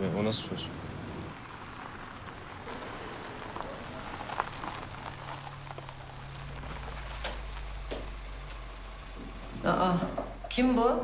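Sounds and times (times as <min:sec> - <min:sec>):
car engine humming: 0:00.0 - 0:11.0.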